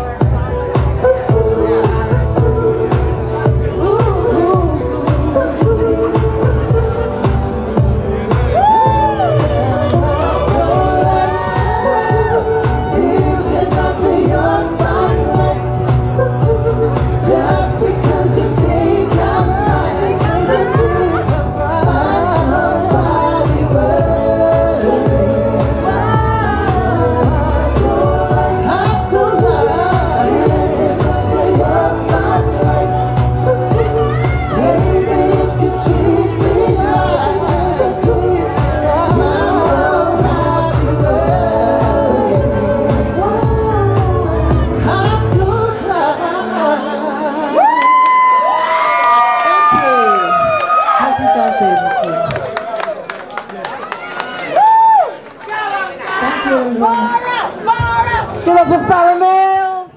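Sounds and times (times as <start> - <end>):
person singing into microphone: 0.0 - 52.2
pop backing music: 0.0 - 53.0
audience cheering: 47.6 - 57.4.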